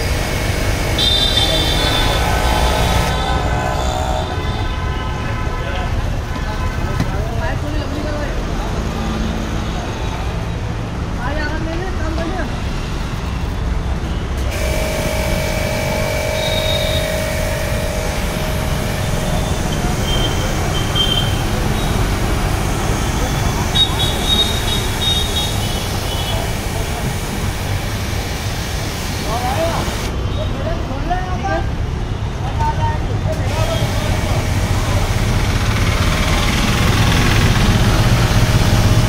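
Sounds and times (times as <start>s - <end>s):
pressure washer spraying water: 0.0s - 3.4s, 14.4s - 30.1s, 33.5s - 39.0s
street traffic: 0.0s - 39.0s
voices: 1.0s - 10.5s, 14.7s - 31.7s, 32.4s - 38.9s.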